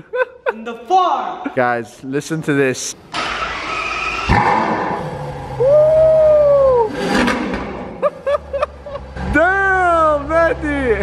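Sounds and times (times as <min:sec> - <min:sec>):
car engine revving and idling: 0:03.2 - 0:11.0.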